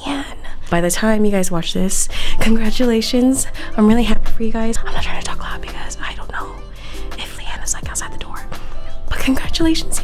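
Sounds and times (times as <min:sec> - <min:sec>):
woman whispering: 0:00.0 - 0:00.8, 0:02.4 - 0:08.6
background music: 0:00.0 - 0:10.0.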